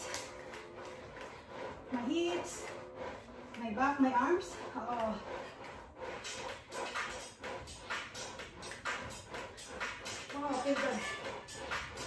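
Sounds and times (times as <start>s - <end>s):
electronic music with steady beat: 0.0s - 12.0s.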